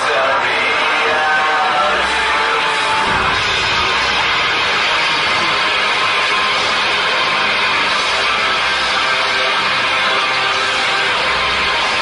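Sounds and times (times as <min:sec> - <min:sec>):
loud music: 0:00.0 - 0:12.0.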